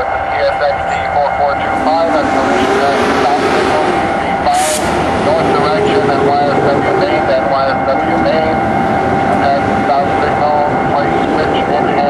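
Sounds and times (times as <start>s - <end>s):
diesel locomotive running: 0.0s - 12.0s
indistinct voices: 0.0s - 12.0s.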